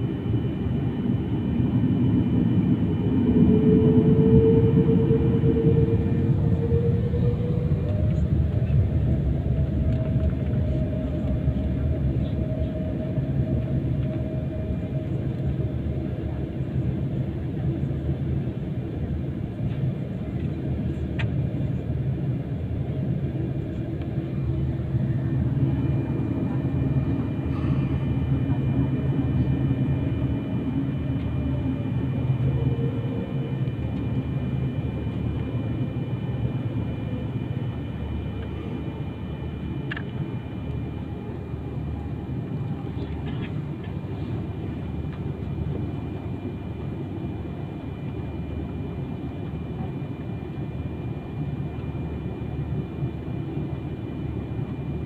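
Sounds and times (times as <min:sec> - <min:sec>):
faint high whine: 0:00.0 - 0:55.0
jet engines low rumble: 0:00.0 - 0:55.0.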